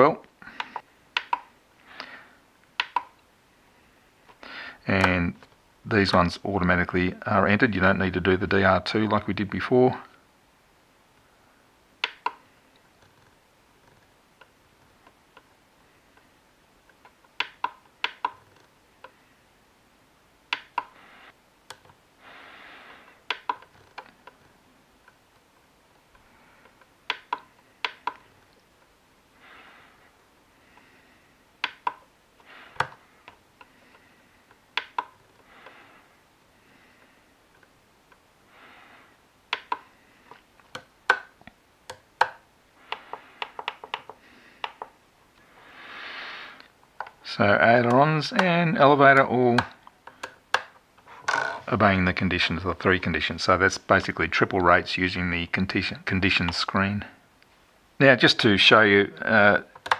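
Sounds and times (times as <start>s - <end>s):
faint clicks of transmitter controls: 21.6s - 22.0s.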